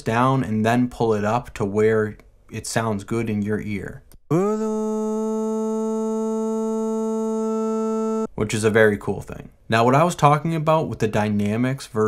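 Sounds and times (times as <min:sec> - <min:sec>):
sustained synthetic vocal drone: 0:04.3 - 0:08.3.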